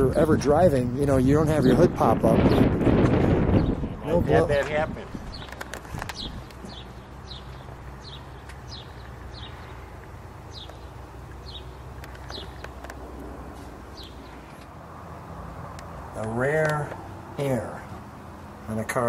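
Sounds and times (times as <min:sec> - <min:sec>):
bird chirping: 0:05.1 - 0:13.0, 0:13.7 - 0:14.7.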